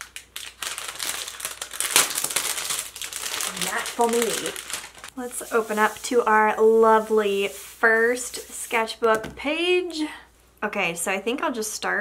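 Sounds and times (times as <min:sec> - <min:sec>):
plastic packaging crinkling: 0:00.0 - 0:06.0.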